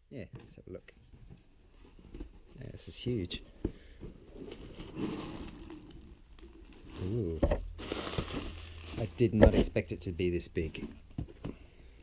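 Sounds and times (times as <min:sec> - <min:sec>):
cardboard box scraping: 0:04.3 - 0:05.9.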